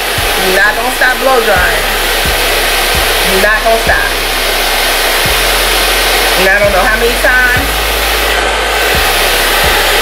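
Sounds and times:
hair dryer blowing: 0.0s - 10.0s.

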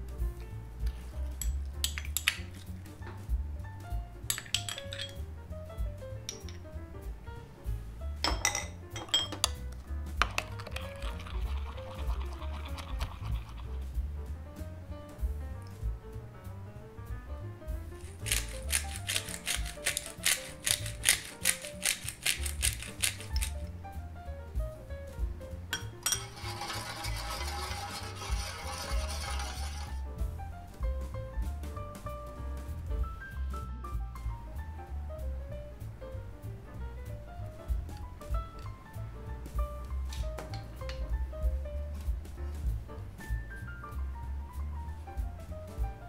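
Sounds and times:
soft background music: 0.0s - 46.0s
spoon clinking glass bowl: 4.3s - 5.2s, 8.3s - 9.6s, 25.8s - 30.0s
water running in tray: 10.5s - 13.8s, 26.1s - 30.0s.

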